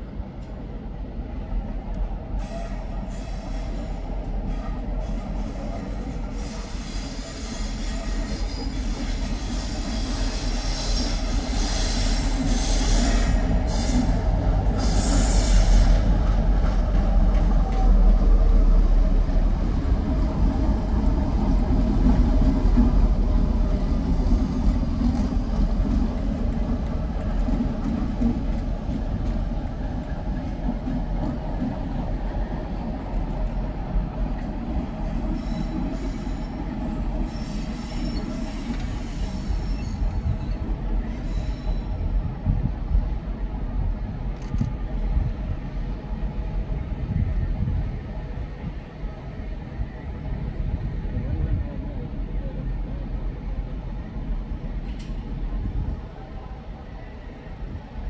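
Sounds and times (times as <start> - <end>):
diesel locomotive engine rumble: 0.0 - 58.0
high-pitched wheel squeal: 37.3 - 40.6.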